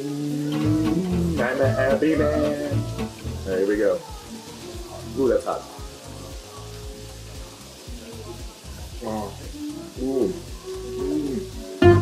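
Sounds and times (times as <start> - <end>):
meat sizzling on a grill: 0.0 - 12.0
music with repeating bass beat: 0.5 - 12.0.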